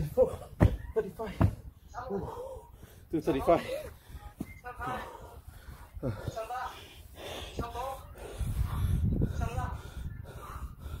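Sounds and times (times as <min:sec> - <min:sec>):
person breathing heavily: 0:01.4 - 0:11.0.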